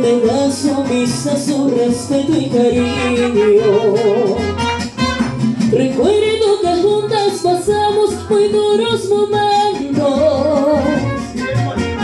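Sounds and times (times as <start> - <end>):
guitars strumming: 0.0 - 12.0.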